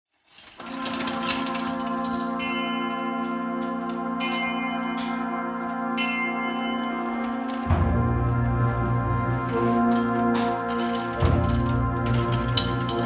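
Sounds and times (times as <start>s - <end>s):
wind band sustained chord: 0.7s - 13.0s
bell struck: 2.3s - 7.9s.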